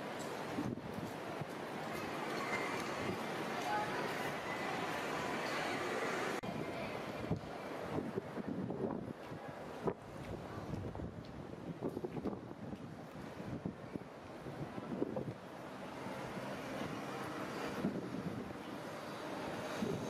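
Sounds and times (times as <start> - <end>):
traffic hum: 0.0 - 9.1, 9.8 - 20.0
wind buffeting microphone: 0.3 - 4.4, 6.4 - 15.6, 16.2 - 20.0.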